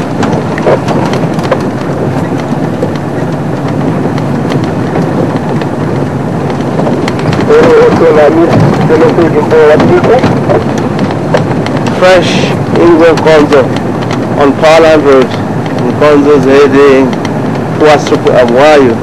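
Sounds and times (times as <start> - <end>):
vehicle engine rumbling: 0.0 - 19.0
man talking: 7.4 - 10.4, 11.9 - 13.7, 14.4 - 17.2, 17.8 - 19.0.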